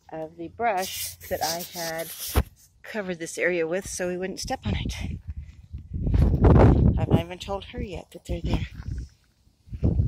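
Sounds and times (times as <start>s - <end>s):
wind buffeting microphone: 3.8s - 10.0s.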